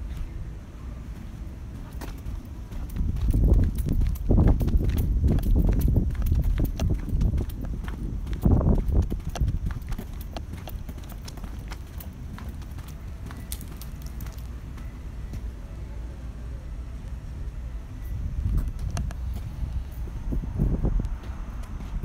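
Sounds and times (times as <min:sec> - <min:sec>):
low rumbling on microphone: 0:00.0 - 0:14.4, 0:18.1 - 0:22.0
footsteps on concrete: 0:01.1 - 0:15.5, 0:18.5 - 0:22.0.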